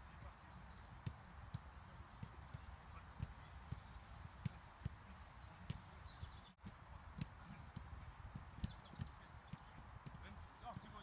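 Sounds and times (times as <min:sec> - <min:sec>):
footballs thudding on kicks: 0:00.0 - 0:11.0.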